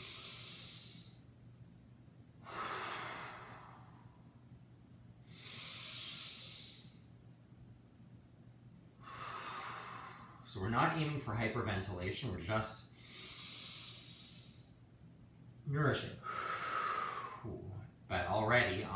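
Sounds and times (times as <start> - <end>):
man breathing deeply: 0.0 - 1.3, 2.4 - 4.3, 5.2 - 7.1, 9.0 - 10.5, 12.9 - 14.8, 16.2 - 17.6.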